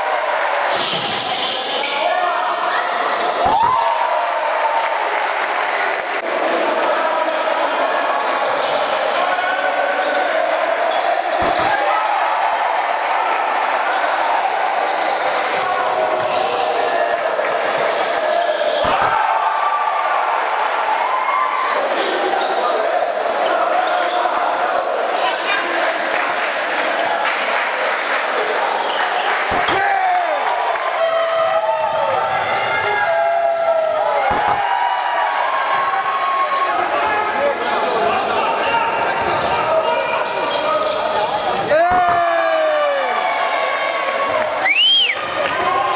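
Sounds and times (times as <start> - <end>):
crowd voices and shouts: 0.0 - 45.9.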